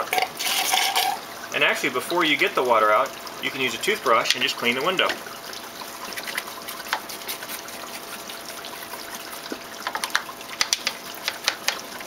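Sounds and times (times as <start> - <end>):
water trickling: 0.0 - 12.0
toothbrush scrubbing glass: 6.0 - 10.1.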